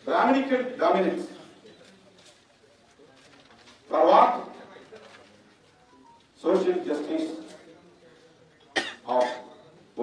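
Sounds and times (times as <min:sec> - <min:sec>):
man speaking through microphone: 0:00.0 - 0:01.7, 0:03.9 - 0:05.0, 0:06.4 - 0:08.3, 0:09.0 - 0:10.0.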